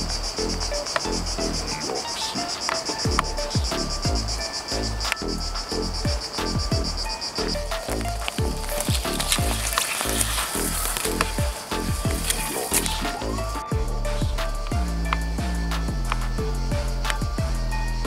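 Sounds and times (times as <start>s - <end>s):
sustained bass: 0.0s - 1.8s, 3.1s - 18.0s
bright hiss: 0.0s - 18.0s
electronic music: 0.0s - 18.0s
synth melody: 0.0s - 18.0s
deep kick drums: 3.1s - 17.8s.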